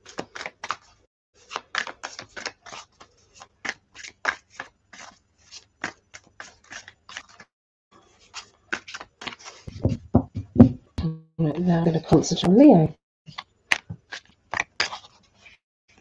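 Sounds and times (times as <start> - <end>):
cards being shuffled: 0.0 - 7.5, 8.2 - 10.0, 13.3 - 15.6.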